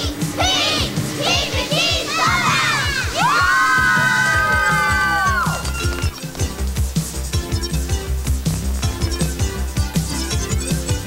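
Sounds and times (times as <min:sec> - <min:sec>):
children shouting and cheering: 0:00.0 - 0:06.2
theme music with drum beat: 0:00.0 - 0:11.0.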